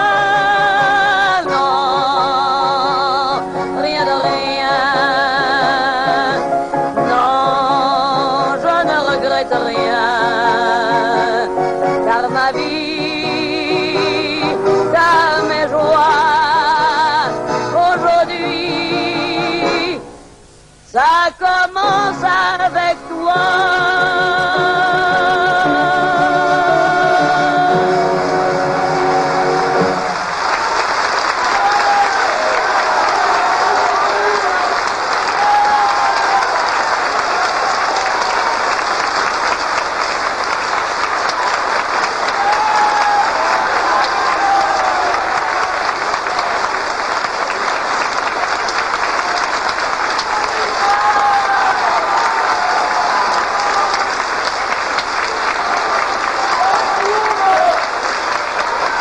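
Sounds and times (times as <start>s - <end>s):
audience applauding: 25.2s - 59.0s
orchestra closing chord: 26.4s - 30.6s.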